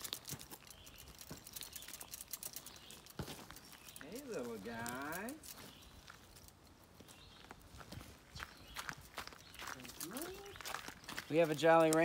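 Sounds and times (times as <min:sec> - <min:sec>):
footsteps on the ground: 0:00.0 - 0:12.0.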